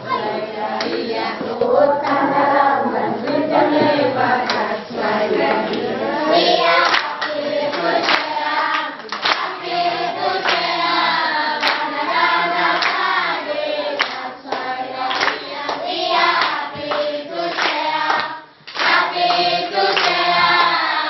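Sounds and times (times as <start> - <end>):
children's choir singing: 0.0 - 21.0
hands clapping in a beat: 4.4 - 4.7, 6.7 - 13.2, 13.9 - 21.0.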